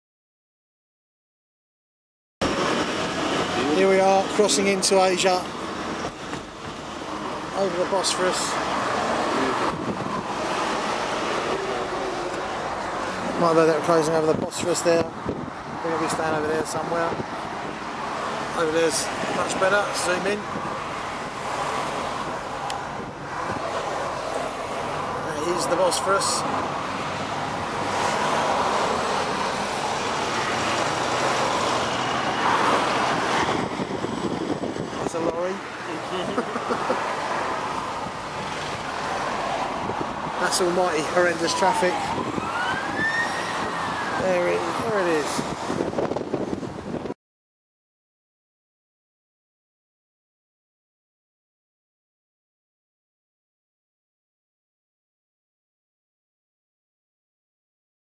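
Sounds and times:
car engine and road noise: 0:02.4 - 0:47.2.

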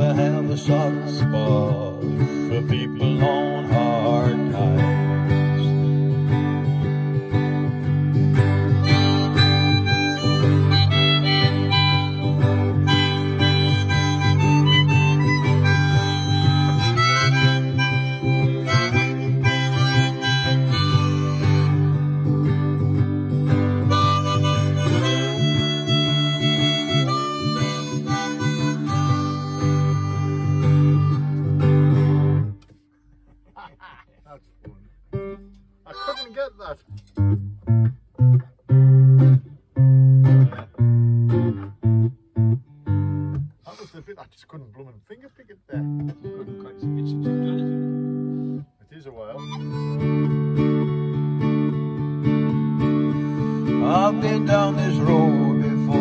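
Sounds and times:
strummed acoustic guitar: 0:00.0 - 0:56.0
harmonica solo: 0:08.4 - 0:32.6, 0:35.8 - 0:36.9, 0:47.2 - 0:56.0.

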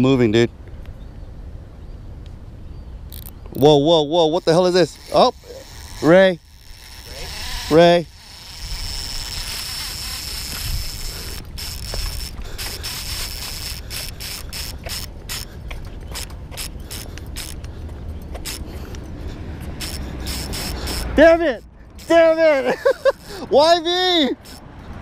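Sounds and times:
fishing reel drag whining: 0:03.1 - 0:03.3, 0:04.2 - 0:17.7, 0:18.4 - 0:18.8, 0:19.8 - 0:24.7
fishing reel drag clicking: 0:03.1 - 0:03.4, 0:04.3 - 0:17.7, 0:18.4 - 0:19.0, 0:19.8 - 0:24.7.

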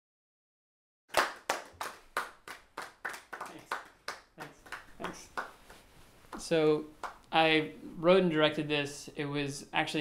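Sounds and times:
small audience applauding: 0:01.1 - 0:07.3.

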